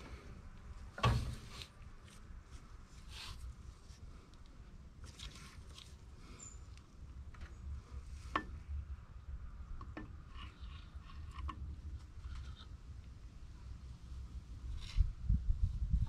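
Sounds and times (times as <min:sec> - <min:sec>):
light rubbing and scraping: 0:01.0 - 0:04.3, 0:10.1 - 0:12.9, 0:14.6 - 0:16.0.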